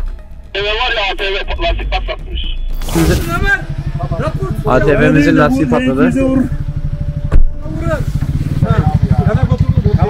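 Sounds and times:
men talking: 0:00.6 - 0:06.8, 0:07.6 - 0:10.0.

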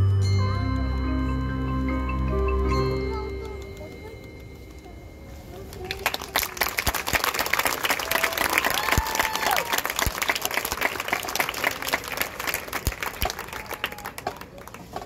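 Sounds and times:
audience applauding: 0:05.7 - 0:15.0
voices cheering: 0:07.3 - 0:10.2, 0:13.3 - 0:14.6.

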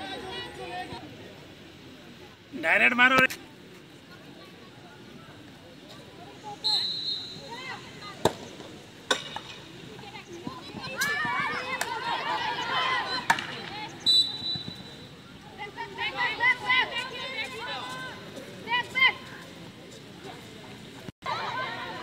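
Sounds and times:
whistle blast: 0:06.6 - 0:07.6, 0:14.0 - 0:15.2
players shouting: 0:10.4 - 0:19.4, 0:21.2 - 0:22.0.

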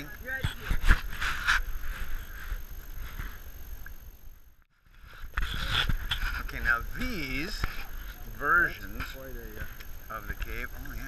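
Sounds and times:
brush rustling: 0:00.2 - 0:03.8.

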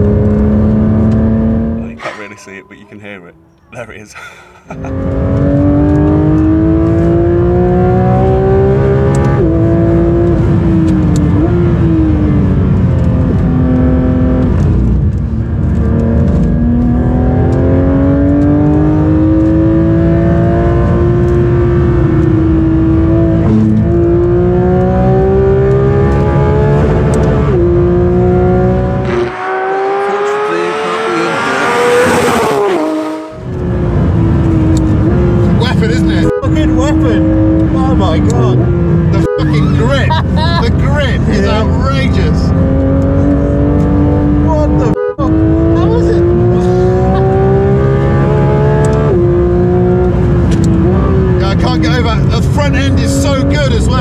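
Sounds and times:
car engine revving from cabin: 0:00.0 - 0:02.2, 0:04.7 - 0:54.0.

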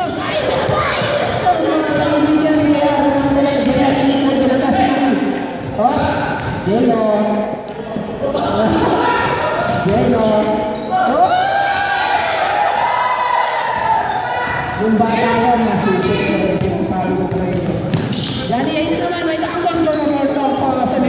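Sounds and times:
basketball bouncing on hardwood floor: 0:00.6 - 0:04.1, 0:14.6 - 0:19.0.

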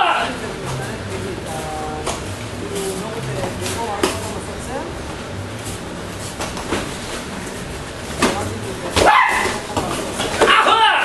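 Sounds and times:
high yelp-like shout: 0:09.0 - 0:09.5, 0:10.4 - 0:11.0.

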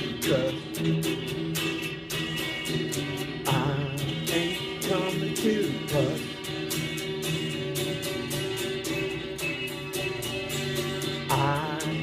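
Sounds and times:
man singing: 0:00.0 - 0:01.6, 0:03.3 - 0:06.5, 0:11.1 - 0:12.0
guitar strumming: 0:00.0 - 0:12.0.

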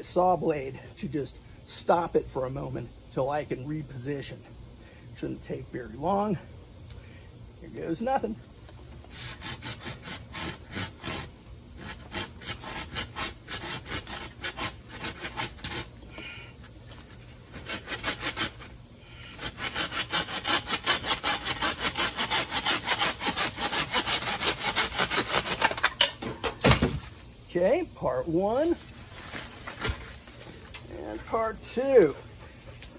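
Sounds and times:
hand saw cutting bamboo: 0:09.0 - 0:16.3, 0:17.0 - 0:26.1.

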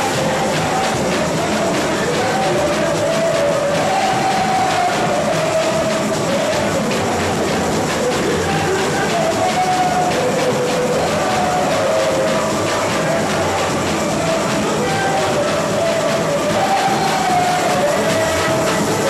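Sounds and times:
people singing: 0:00.0 - 0:19.0
samba percussion: 0:00.0 - 0:19.0.

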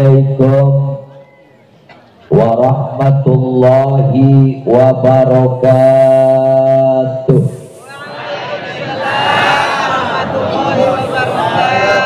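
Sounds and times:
man chanting over a pa: 0:00.0 - 0:01.4, 0:02.3 - 0:08.1, 0:10.5 - 0:12.0.

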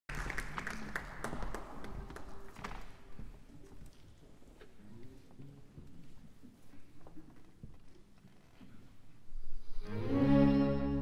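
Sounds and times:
audience applause: 0:00.1 - 0:02.6.

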